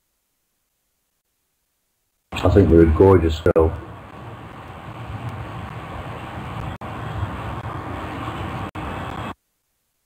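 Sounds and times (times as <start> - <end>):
hiss with low rumble: 2.3 - 9.4.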